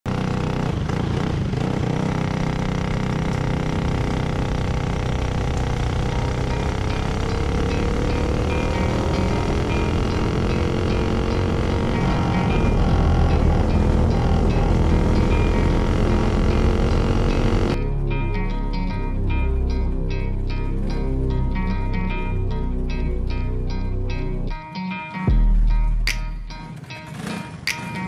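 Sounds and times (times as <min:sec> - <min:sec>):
kart engine running: 0:00.1 - 0:17.8, 0:26.6 - 0:28.0.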